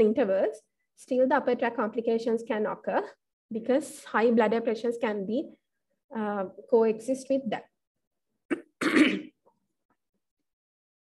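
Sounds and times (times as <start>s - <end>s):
woman coughing: 8.5s - 9.4s.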